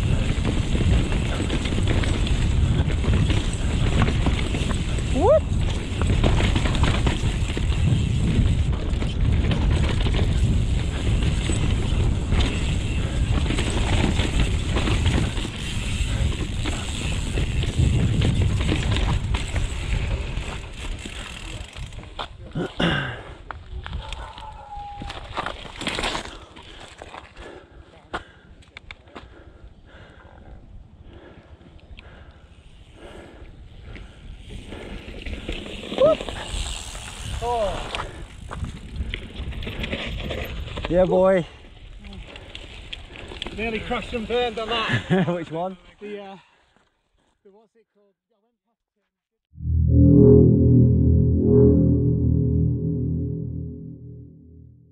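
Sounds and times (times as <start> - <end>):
wind on helmet camera: 0.0 - 20.5
bike rattling: 0.0 - 22.2
bike tyres rumbling on dirt: 0.0 - 22.2.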